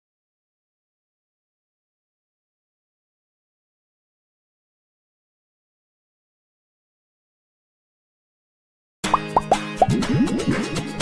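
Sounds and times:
cartoon bloop sound effects: 9.1s - 10.9s
light jingle music: 9.1s - 11.0s.

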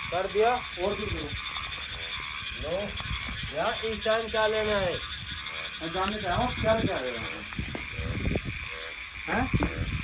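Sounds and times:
frogs croaking: 0.0s - 10.0s
footsteps rustling through dry weeds: 1.3s - 3.8s, 5.0s - 8.0s.

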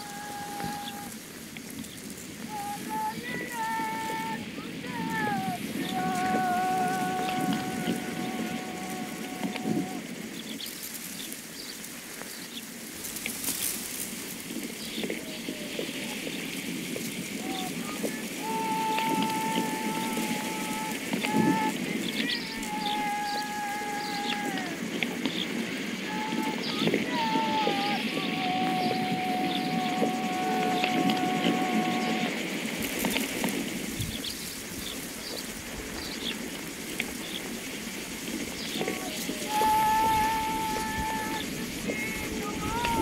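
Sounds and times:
person singing long held notes: 0.0s - 10.3s, 13.5s - 34.0s, 37.9s - 43.0s
crackling rustling noise with clicks: 0.0s - 43.0s.

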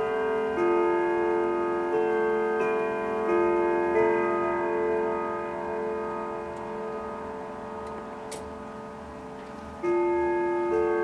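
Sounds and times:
grandfather clock chimes: 0.0s - 11.0s.

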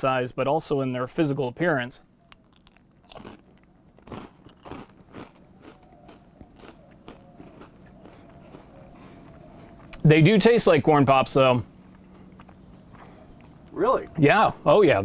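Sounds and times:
cereal crunching and chewing: 2.3s - 10.1s, 11.8s - 13.8s.

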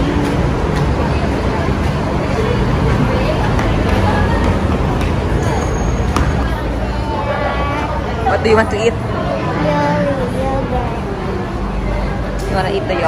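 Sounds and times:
murmur of people talking: 0.0s - 13.0s
traffic rumble: 0.0s - 13.0s.

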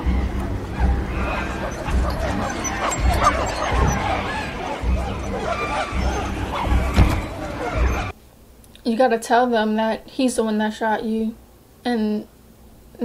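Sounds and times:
apes hooting and screaming: 0.0s - 8.1s
dramatic music with low pulses: 0.0s - 8.1s.

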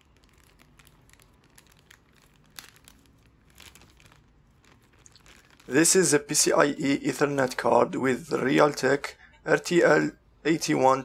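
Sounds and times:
plastic bag crinkling: 0.0s - 6.8s.

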